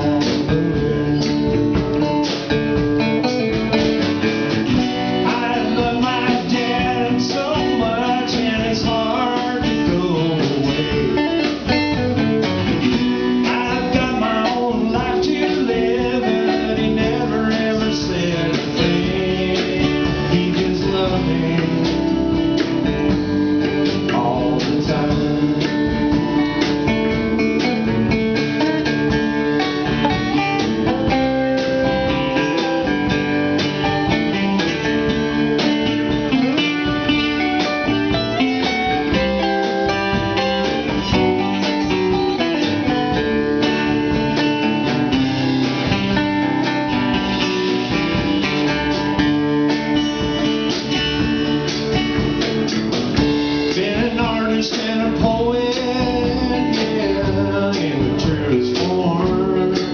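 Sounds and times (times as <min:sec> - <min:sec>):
person singing: 0:00.0 - 0:02.0, 0:05.2 - 0:11.7, 0:13.2 - 0:22.8, 0:23.7 - 0:28.1, 0:53.6 - 0:59.9
country-blues band playing: 0:00.0 - 0:59.9.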